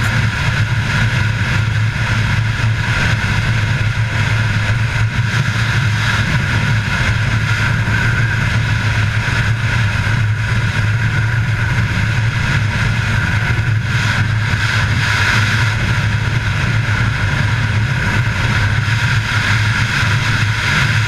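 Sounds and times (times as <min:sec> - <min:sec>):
snowmobile engine droning: 0:00.0 - 0:21.0.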